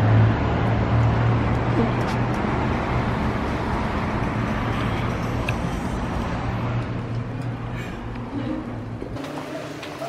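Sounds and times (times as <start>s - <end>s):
road traffic hum: 0.0s - 10.0s.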